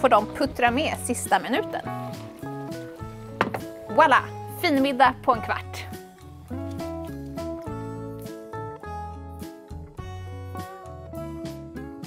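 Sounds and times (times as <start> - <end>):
background music with held notes: 0.0 - 12.0
sharp knock: 3.4 - 3.7.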